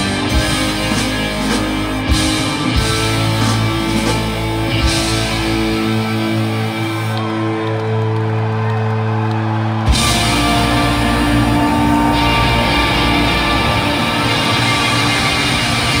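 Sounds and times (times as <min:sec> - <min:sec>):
live rock band playing: 0:00.0 - 0:09.0, 0:09.7 - 0:16.0.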